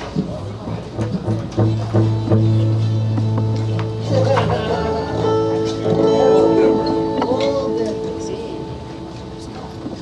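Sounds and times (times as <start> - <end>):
plucked notes: 0.8 - 10.0
steady chord tones: 1.3 - 10.0.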